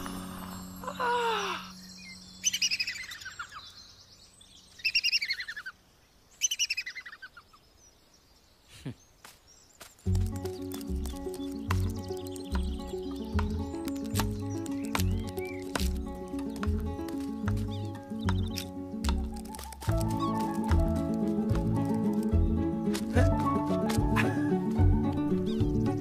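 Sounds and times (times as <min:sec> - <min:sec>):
bird chirping: 0:00.8 - 0:26.0.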